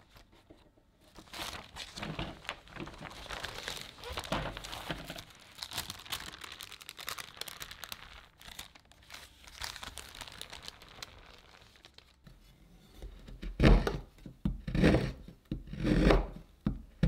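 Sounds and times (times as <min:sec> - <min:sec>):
parchment paper crinkling: 0:01.0 - 0:12.3.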